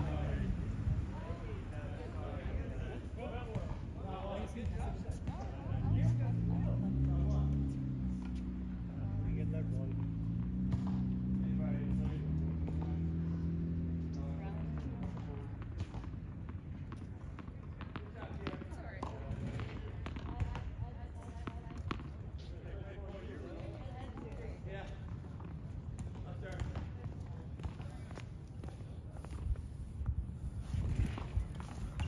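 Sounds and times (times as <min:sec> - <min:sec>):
tennis balls bouncing and struck: 0:02.0 - 0:32.0.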